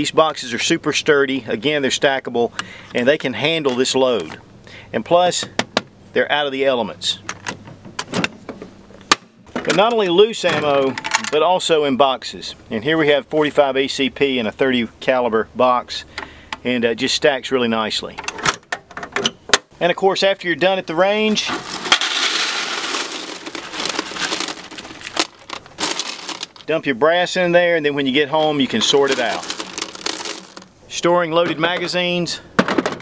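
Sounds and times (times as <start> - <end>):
brass casings clattering into metal can: 21.3 - 26.7, 28.4 - 30.8.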